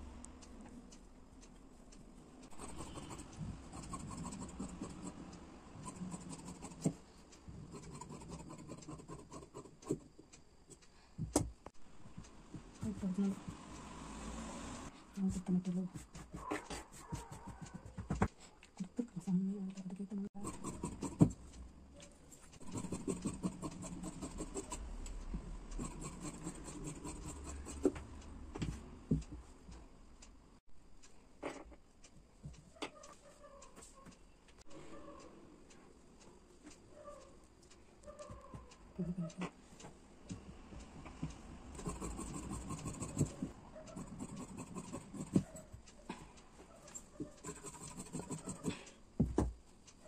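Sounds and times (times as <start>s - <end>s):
scissors snipping fabric: 5.8s - 7.0s, 22.6s - 24.8s, 25.8s - 28.0s, 41.8s - 45.8s, 47.2s - 48.9s.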